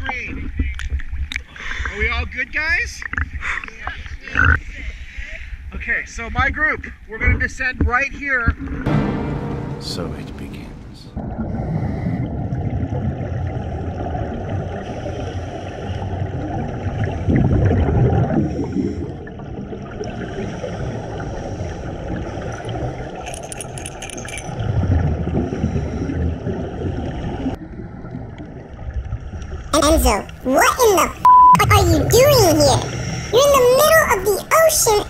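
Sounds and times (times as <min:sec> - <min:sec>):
underwater bubbles: 0:11.2 - 0:23.2, 0:24.5 - 0:30.4.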